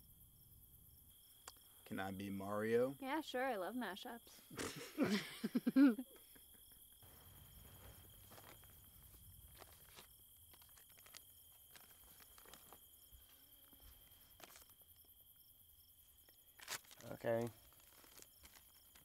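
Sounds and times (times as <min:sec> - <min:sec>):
high insect drone: 0:00.0 - 0:19.0.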